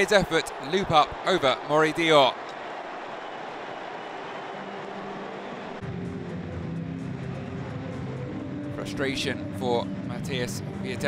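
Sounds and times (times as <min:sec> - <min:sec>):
stadium crowd cheering: 0:00.0 - 0:09.2.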